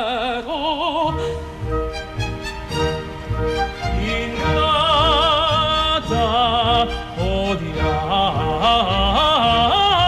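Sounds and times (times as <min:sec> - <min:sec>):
operatic voice singing: 0:00.0 - 0:01.4, 0:03.8 - 0:10.0
orchestral accompaniment: 0:00.0 - 0:10.0.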